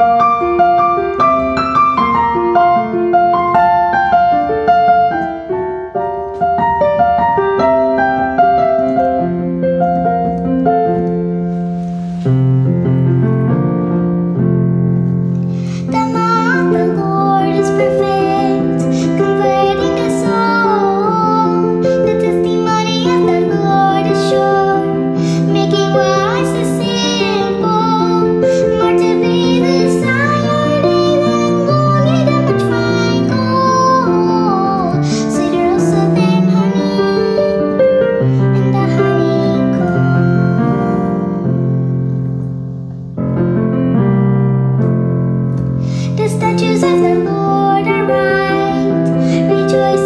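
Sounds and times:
instrumental accompaniment: 0.0s - 50.0s
girl singing: 15.5s - 41.7s, 45.8s - 50.0s.

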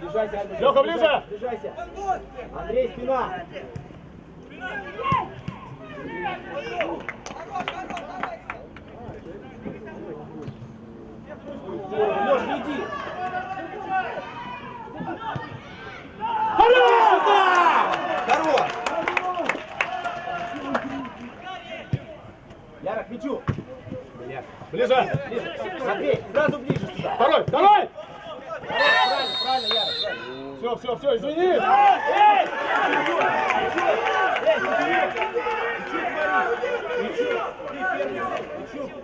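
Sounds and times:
players shouting: 4.5s - 8.6s, 11.2s - 22.4s, 24.8s - 39.0s.

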